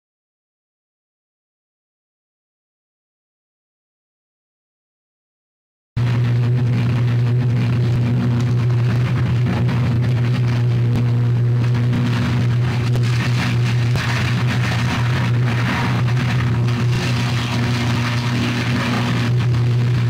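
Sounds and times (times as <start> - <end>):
electrical arc buzzing and crackling: 6.0 - 20.0.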